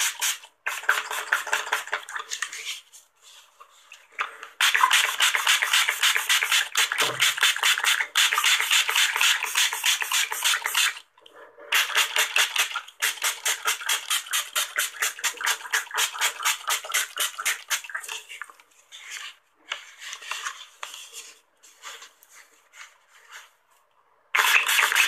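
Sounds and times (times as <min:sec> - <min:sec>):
spray bottle squirts hissing: 0:24.4 - 0:25.0.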